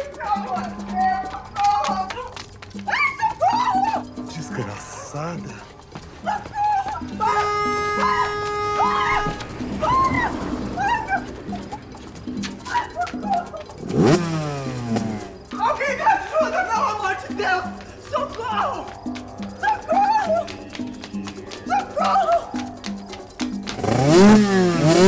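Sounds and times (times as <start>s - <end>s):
background music with beat: 0.0s - 25.0s
woman crying out: 1.0s - 11.8s, 12.6s - 13.7s, 19.6s - 20.8s, 21.6s - 22.8s
car horn blaring: 7.2s - 10.8s
car engine revving: 7.4s - 15.6s, 23.6s - 25.0s.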